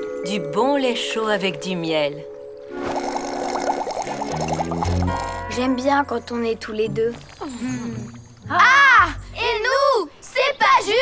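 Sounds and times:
cartoon straw slurping: 0:02.8 - 0:05.4.

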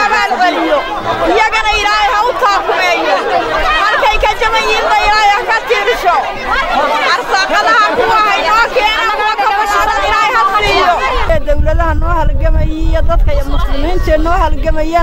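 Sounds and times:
voices chattering: 0:00.0 - 0:15.0
woman talking: 0:00.0 - 0:15.0.

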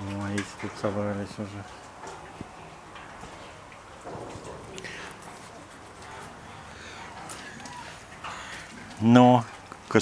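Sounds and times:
claws clicking on wire mesh: 0:01.7 - 0:10.0.

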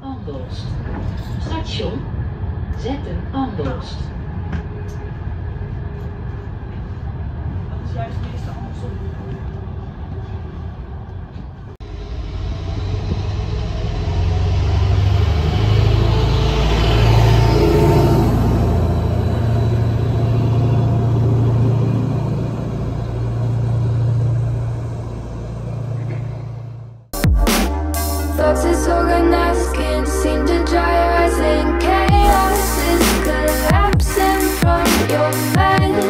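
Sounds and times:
train running on rails: 0:00.0 - 0:27.1
diesel train engine rumble: 0:00.0 - 0:36.0.

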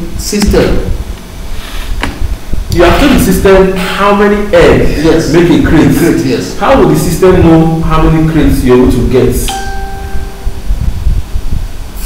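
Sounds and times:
steady tone: 0:09.5 - 0:11.4
low rumble on microphone: 0:10.0 - 0:12.0.

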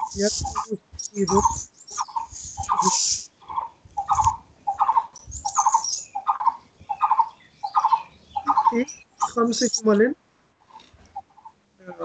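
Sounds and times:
bird pulsed call: 0:00.0 - 0:09.9.

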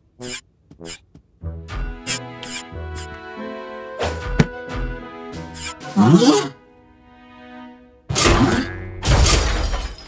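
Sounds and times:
soft background music: 0:01.4 - 0:09.0.

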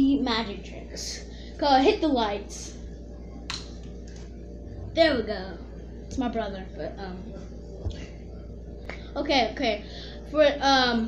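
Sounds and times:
faint room hum: 0:00.0 - 0:11.0.

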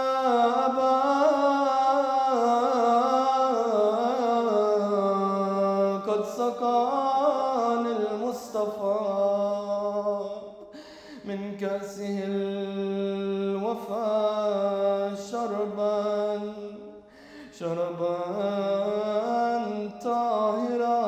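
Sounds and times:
man chanting a slow elegy: 0:00.0 - 0:10.6, 0:11.2 - 0:21.0.

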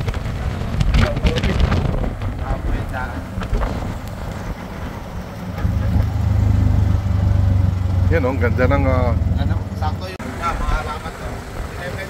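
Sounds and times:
motor tricycle engine running: 0:00.0 - 0:12.0.

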